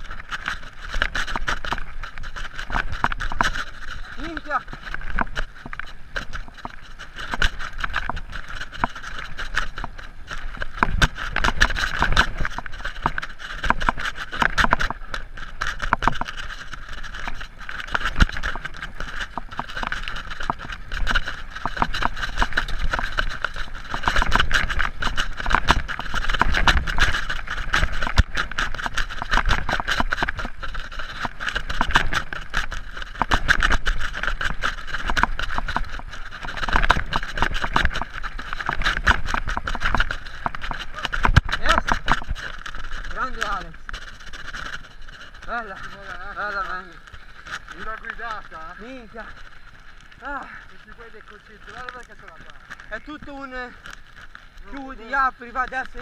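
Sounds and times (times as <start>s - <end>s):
bike components rattling: 0.0s - 56.0s
wind rumbling on microphone: 0.0s - 56.0s.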